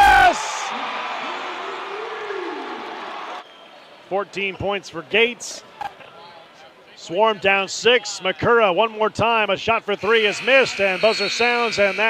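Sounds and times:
crowd cheering and shouting: 0:00.0 - 0:03.4, 0:10.0 - 0:12.0.

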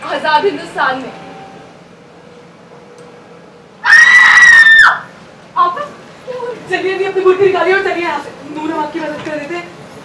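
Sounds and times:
woman screaming: 0:03.8 - 0:05.1.

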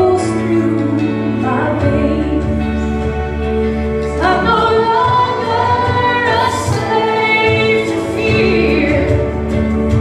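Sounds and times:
woman singing into a microphone: 0:00.0 - 0:03.3, 0:04.0 - 0:10.0
musical accompaniment: 0:00.0 - 0:10.0.

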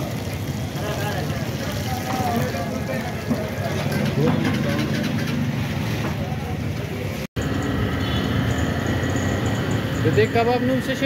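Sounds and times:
traffic rumble: 0:00.0 - 0:11.0.

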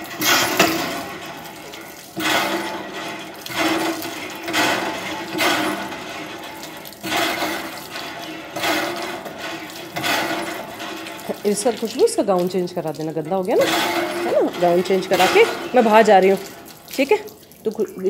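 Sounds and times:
water splashing on concrete: 0:00.0 - 0:18.0.

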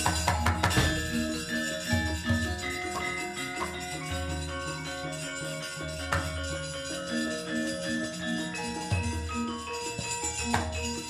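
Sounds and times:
metallophones playing pattern: 0:00.0 - 0:11.0.

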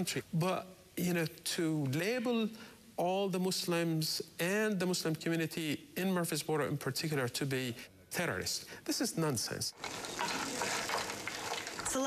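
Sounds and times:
peas frying with a hiss: 0:09.7 - 0:12.0
wooden spoon stirring: 0:09.8 - 0:12.0.

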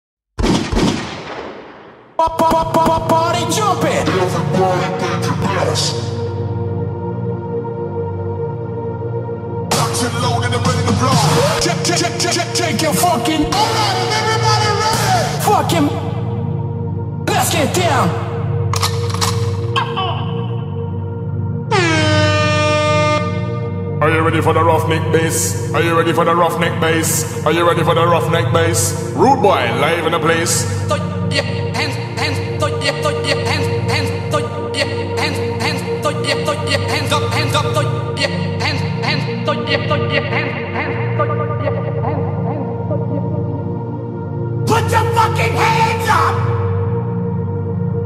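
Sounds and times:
electronic dance track: 0:09.7 - 0:16.1
air horn blast: 0:21.7 - 0:23.8.

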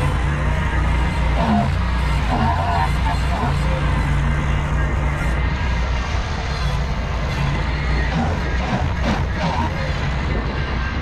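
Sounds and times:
tractor running under load: 0:00.0 - 0:11.0.

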